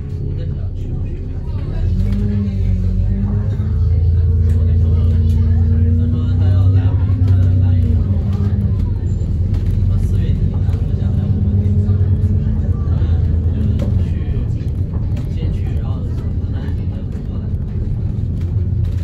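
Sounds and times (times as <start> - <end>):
bus engine drone: 0.0 - 19.0
passengers talking: 0.0 - 19.0.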